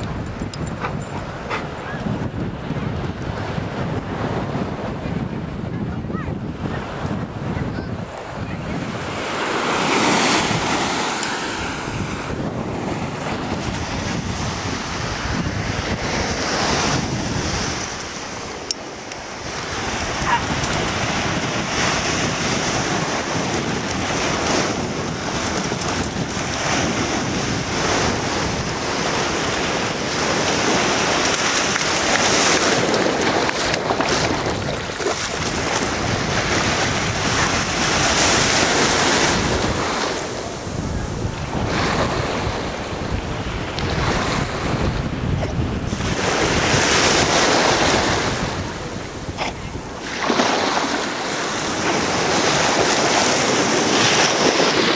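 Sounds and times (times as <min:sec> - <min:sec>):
small waves washing onto beach: 0:00.0 - 0:54.9
wind buffeting microphone: 0:00.0 - 0:54.9.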